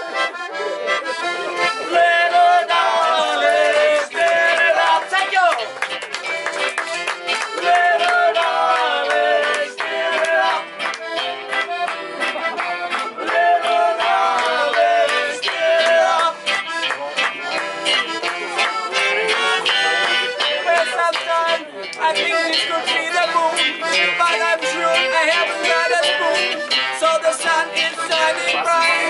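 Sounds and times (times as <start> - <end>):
accordion melody: 0.0 - 29.0
acoustic guitar: 0.0 - 29.0
upright bass: 0.0 - 29.0.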